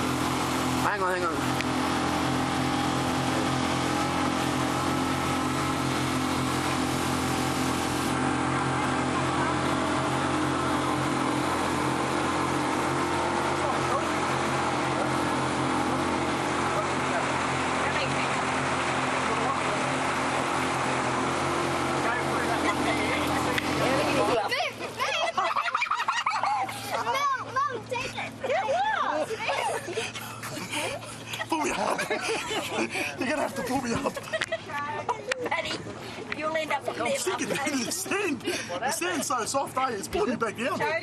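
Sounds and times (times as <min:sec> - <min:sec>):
boat motor droning: 0:00.0 - 0:41.0.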